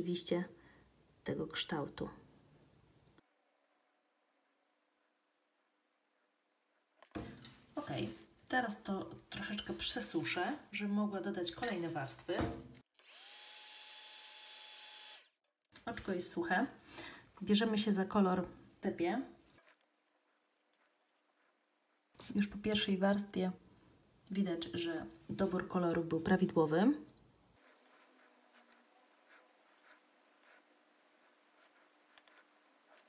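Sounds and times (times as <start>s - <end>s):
hot-air dryer whirring: 13.0s - 15.2s
brush swishing on paper: 19.4s - 22.5s, 27.6s - 33.0s.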